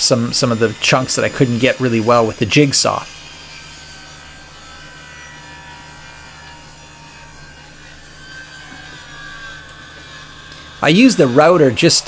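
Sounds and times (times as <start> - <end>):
table saw cutting wood: 0.0 - 12.0.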